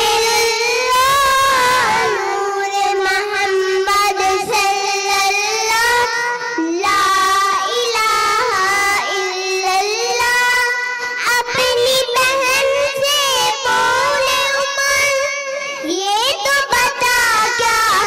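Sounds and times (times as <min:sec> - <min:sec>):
girls singing: 0:00.0 - 0:18.0.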